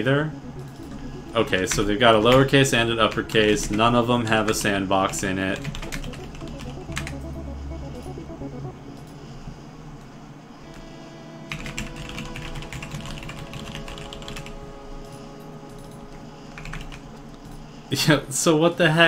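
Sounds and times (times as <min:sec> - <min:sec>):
typing on computer keyboard: 0:05.6 - 0:07.2, 0:11.5 - 0:14.6, 0:15.8 - 0:17.6.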